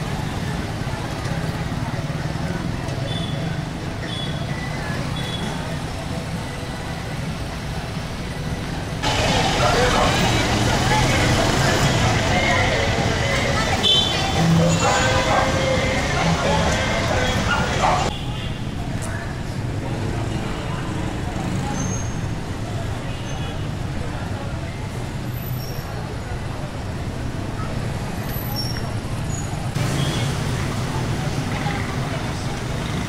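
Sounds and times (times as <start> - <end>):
motorcycles passing: 0.0 - 18.1, 28.9 - 33.0
cars passing: 0.0 - 23.1, 23.8 - 33.0
people's voices: 0.0 - 33.0.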